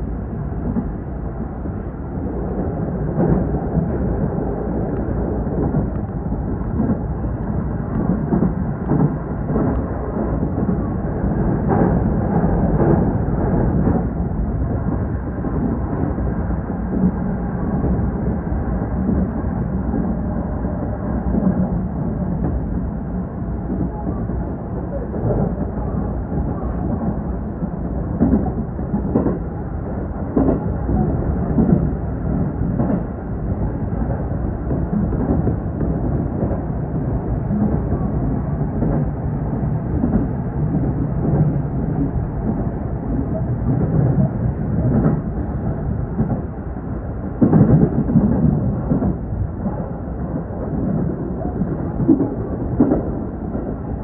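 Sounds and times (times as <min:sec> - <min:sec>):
train wheels rumbling on track: 0:00.0 - 0:54.0.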